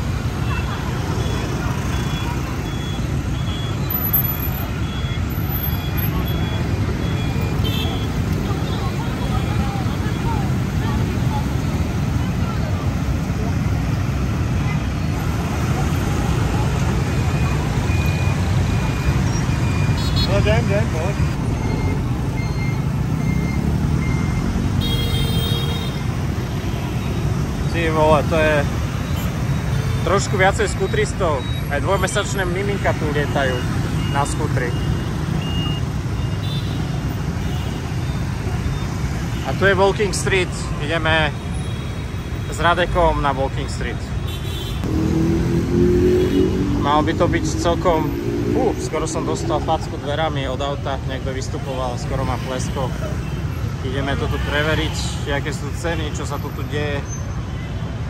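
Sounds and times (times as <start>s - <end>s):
voices: 0.0s - 23.7s
short beeps and horn toots: 1.1s - 9.0s, 17.2s - 27.3s, 32.8s - 39.5s.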